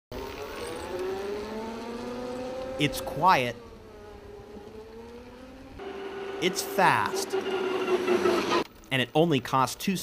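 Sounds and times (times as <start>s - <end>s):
electric car motor whine: 0.2s - 2.8s, 3.6s - 8.7s.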